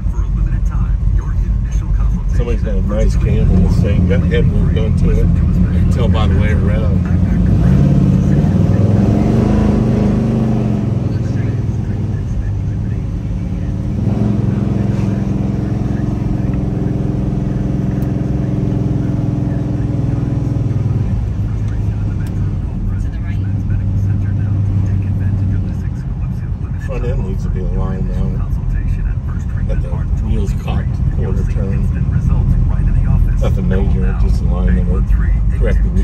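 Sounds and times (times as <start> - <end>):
car engine running in cabin: 0.0 - 36.0.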